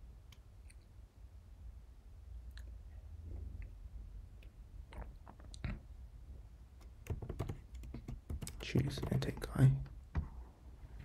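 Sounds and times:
typing on computer keyboard: 6.9s - 9.4s.

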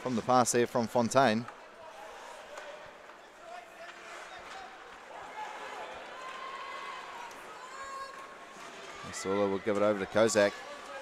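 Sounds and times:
skates on ice: 7.5s - 11.0s.

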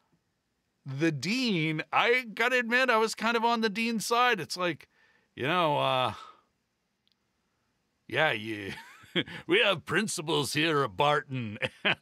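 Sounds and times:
man's voice: 0.9s - 4.8s, 5.4s - 6.3s, 8.1s - 12.0s
faint click: 7.0s - 7.3s.

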